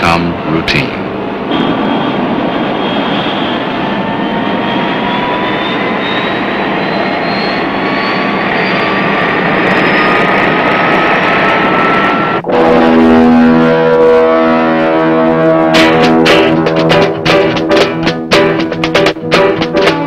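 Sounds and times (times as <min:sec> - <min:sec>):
jet engine whine and rush: 0:00.0 - 0:18.3
music with held notes: 0:12.5 - 0:20.0.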